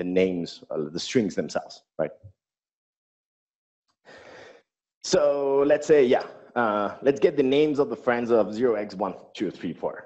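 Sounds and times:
breath into microphone: 0:04.0 - 0:04.7.

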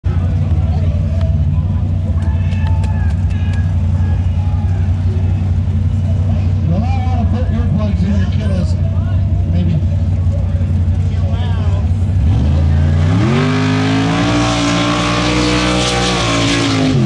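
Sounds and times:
truck engine idling loudly: 0:00.0 - 0:13.7
voices: 0:00.1 - 0:13.7.

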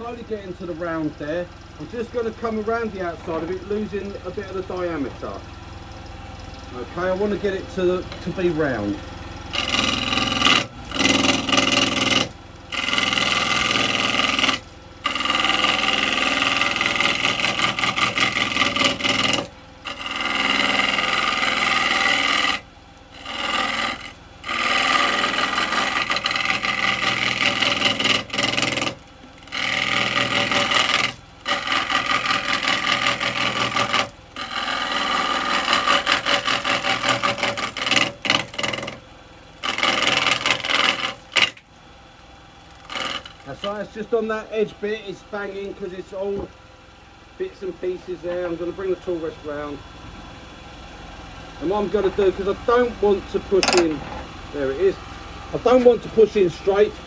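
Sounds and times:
lathe tool scraping wood: 0:09.5 - 0:46.5.

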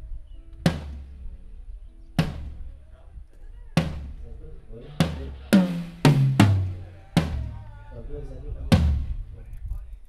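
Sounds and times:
cymbal crash with low drum: 0:04.9 - 0:07.6.

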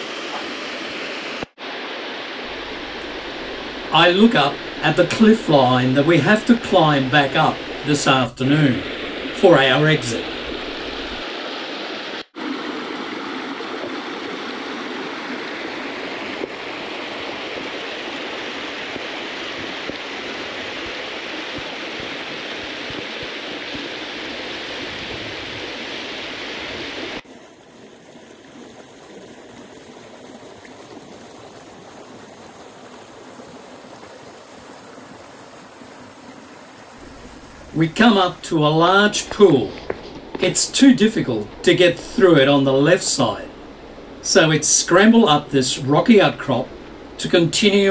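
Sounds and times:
creek water rushing over rocks: 0:00.0 - 0:47.9.

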